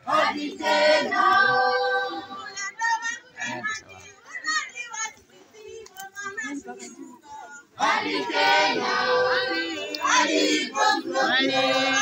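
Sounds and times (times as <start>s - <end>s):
crowd chatter with children: 0.0s - 12.0s.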